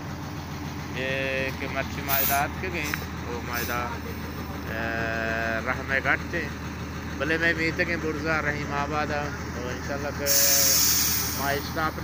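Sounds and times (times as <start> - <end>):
steady low rumble: 0.0 - 10.3
people talking: 1.0 - 6.6, 7.2 - 12.0.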